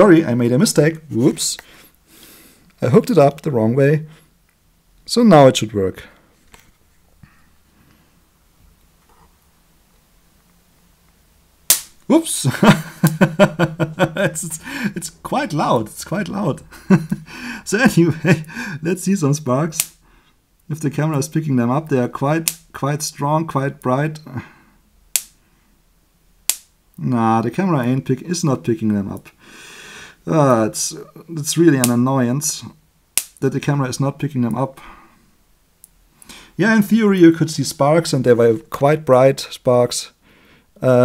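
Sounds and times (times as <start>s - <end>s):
faint low hum: 0.0s - 41.0s
electric fence charger snapping: 11.7s - 12.0s.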